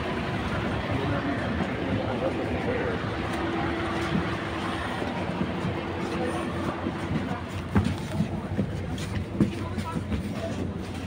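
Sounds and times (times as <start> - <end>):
bus engine idling: 0.0 - 11.0.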